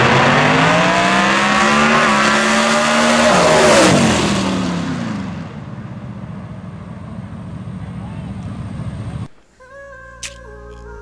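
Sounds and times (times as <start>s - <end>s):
car engines rumbling: 0.0s - 9.5s.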